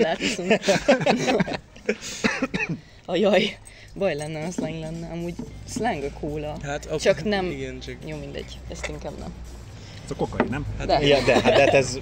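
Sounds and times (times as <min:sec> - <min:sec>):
person coughing: 0:02.2 - 0:02.8.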